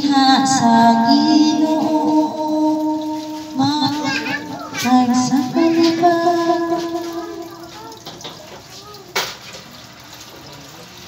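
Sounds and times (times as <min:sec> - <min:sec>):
worship song: 0:00.0 - 0:08.3
children talking and calling out: 0:02.9 - 0:09.5.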